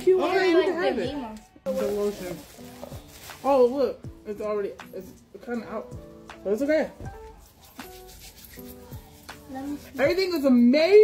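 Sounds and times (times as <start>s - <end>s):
quiet background music: 0.0s - 11.0s
hands rubbing lotion: 7.0s - 10.4s.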